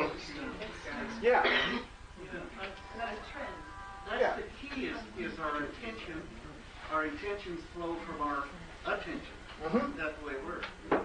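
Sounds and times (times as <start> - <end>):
indistinct conversational speech: 0.0 - 10.9
person clearing throat: 1.3 - 2.0.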